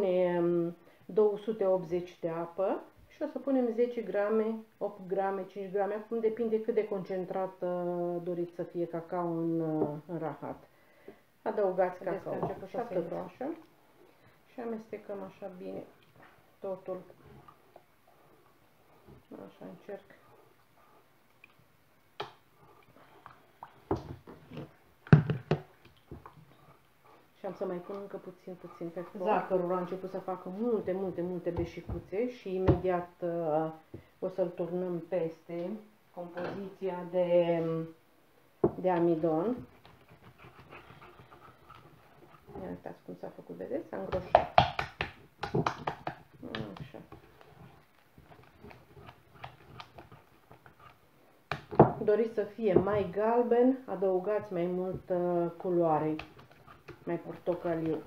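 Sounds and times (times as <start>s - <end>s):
whisk knocking and scraping saucepan: 56.1s - 58.0s.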